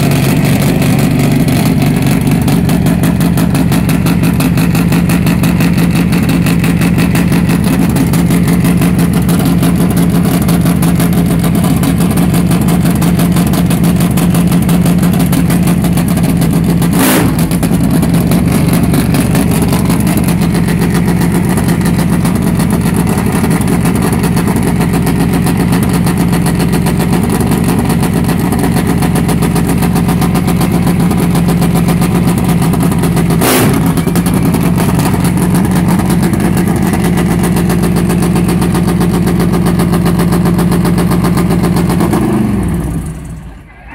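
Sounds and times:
loud motorcycle engine idling: 0.0 - 43.9.

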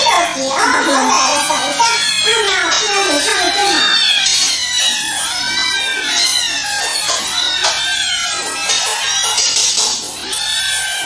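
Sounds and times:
kittens meowing: 0.0 - 11.0.

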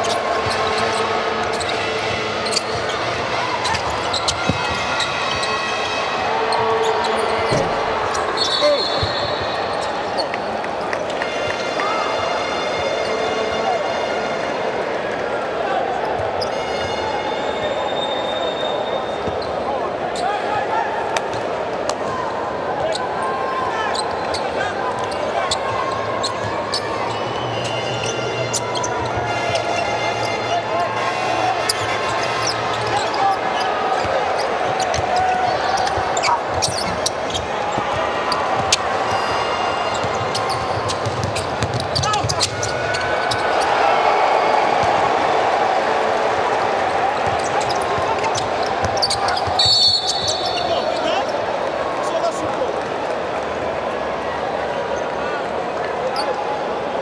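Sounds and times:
shoes squeaking on court: 0.0 - 5.7, 6.4 - 11.2, 17.9 - 20.3, 23.9 - 29.8, 31.6 - 43.8, 47.2 - 51.4
crowd hubbub: 0.0 - 57.0
short high whistle: 8.4 - 9.6, 17.6 - 19.2, 49.6 - 50.8
basketball dribbling: 39.9 - 43.4.

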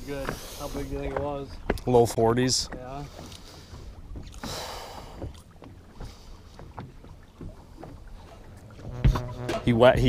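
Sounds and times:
waves lapping against boat hull: 0.0 - 10.0.

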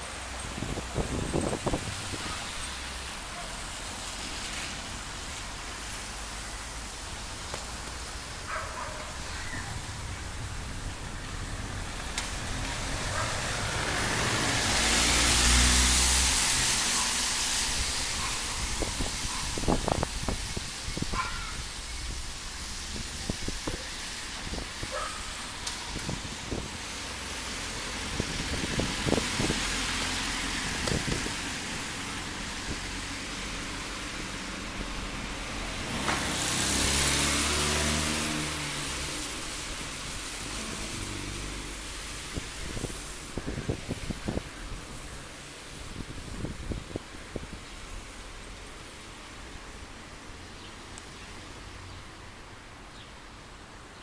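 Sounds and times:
vehicles passing by: 0.0 - 54.0.

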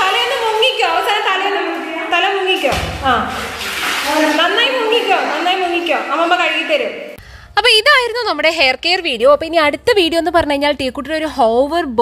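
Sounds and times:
bathtub water splashing: 0.0 - 7.2.

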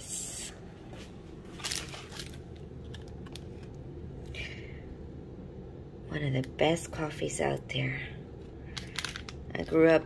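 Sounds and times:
low room hum: 0.0 - 10.0
crinkling rustles: 1.0 - 3.8
foil wrapper crinkling: 1.5 - 3.8.

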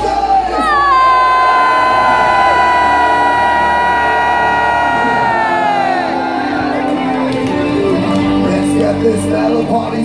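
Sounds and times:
crowd cheering: 0.4 - 8.9.

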